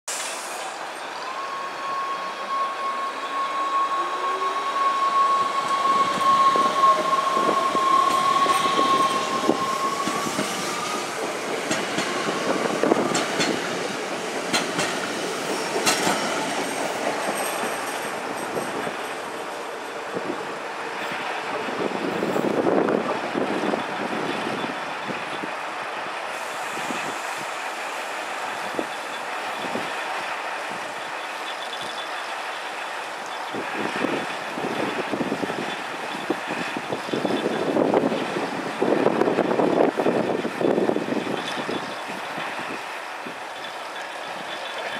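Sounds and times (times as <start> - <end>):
electric train whine: 0.2 - 44.9
train wheels clicking on track: 5.1 - 44.9.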